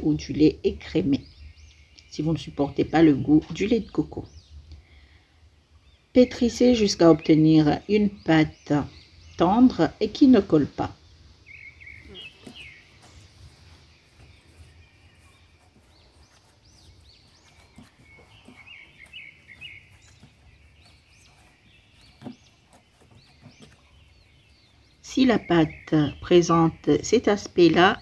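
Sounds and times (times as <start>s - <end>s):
faint birds chirping: 0.0s - 28.0s.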